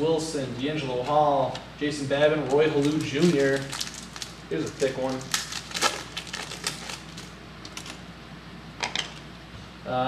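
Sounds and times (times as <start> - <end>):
wrapper tearing and crinkling: 2.5 - 8.0.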